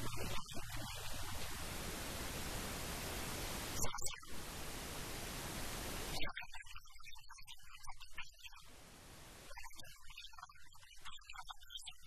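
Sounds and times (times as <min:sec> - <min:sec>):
recording hiss: 0:00.0 - 0:06.5, 0:08.4 - 0:09.9.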